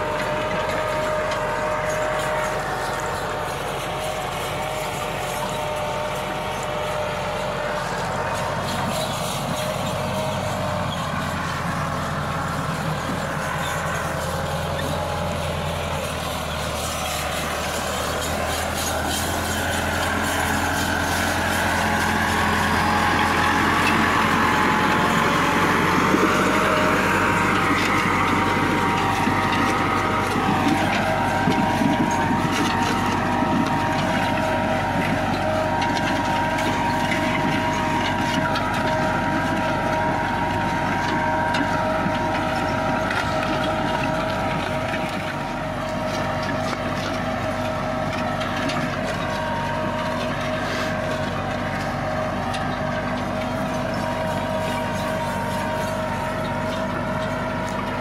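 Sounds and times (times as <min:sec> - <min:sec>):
tractor diesel engine under load: 0:00.0 - 0:58.0.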